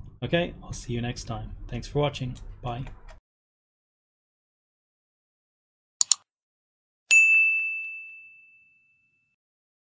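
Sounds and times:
mouse clicks: 6.0s - 6.2s
bright bell ding: 7.1s - 9.4s.

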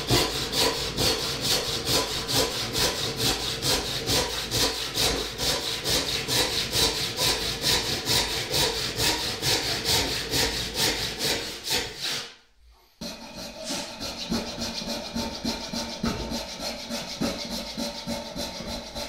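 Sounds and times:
backsaw cutting wood: 0.0s - 12.4s, 13.0s - 19.0s.

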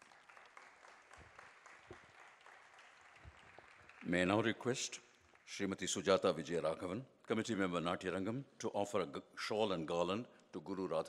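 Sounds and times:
faint applause: 0.0s - 4.4s.

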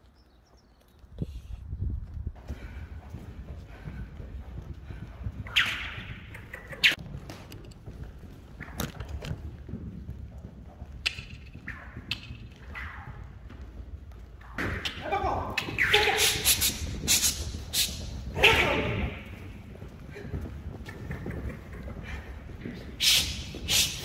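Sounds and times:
hoofbeats on sand: 0.0s - 24.0s
sharp cracks: 14.4s - 19.5s.

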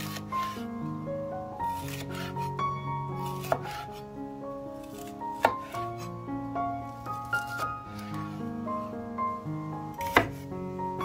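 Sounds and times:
background music: 0.0s - 11.0s
knife slicing pepper on board: 1.8s - 2.3s, 3.3s - 4.0s, 4.9s - 5.8s, 10.0s - 10.4s.

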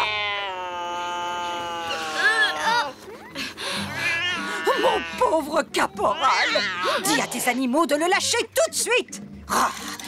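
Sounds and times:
cartoon cat yowling: 0.0s - 2.9s, 6.1s - 7.2s.

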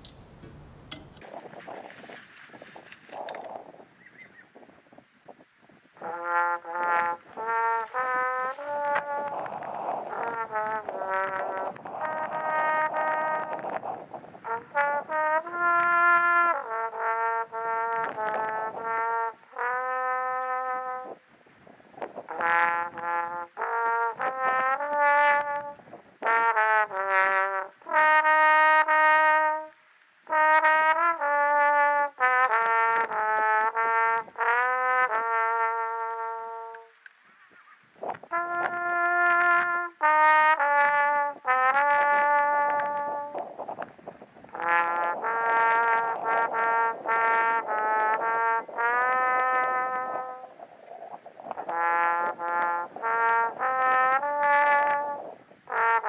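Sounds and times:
trombone melody: 0.0s - 1.4s, 6.0s - 21.2s, 22.3s - 37.0s, 38.2s - 43.8s, 44.5s - 50.6s, 51.6s - 56.0s.

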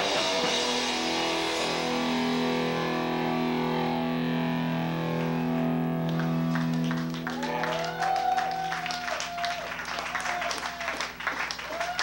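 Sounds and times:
electric guitar chord ringing: 0.0s - 8.8s
audience clapping and cheering: 6.0s - 12.0s.

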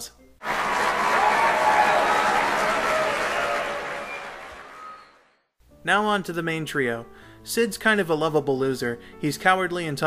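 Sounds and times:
crowd applause: 0.4s - 5.3s.

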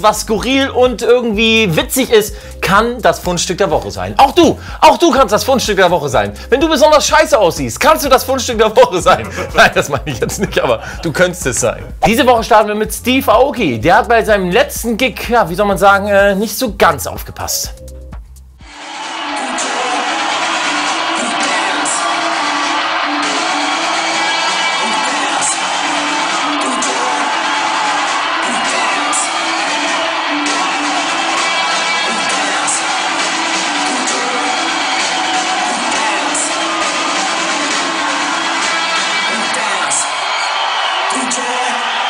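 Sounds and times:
loud dance music: 0.0s - 16.6s, 17.2s - 42.0s
crowd noise: 18.6s - 42.0s.

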